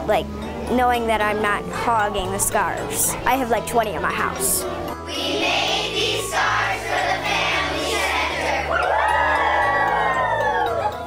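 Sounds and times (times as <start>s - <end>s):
background music: 0.0s - 11.0s
children cheering in a long shout: 8.6s - 11.0s.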